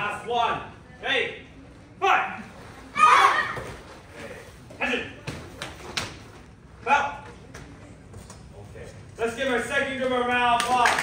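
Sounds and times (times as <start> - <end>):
children shouting together: 3.0 - 3.7.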